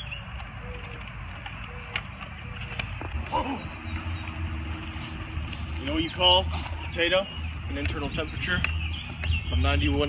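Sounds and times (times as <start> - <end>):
steady low rumble: 2.0 - 10.0.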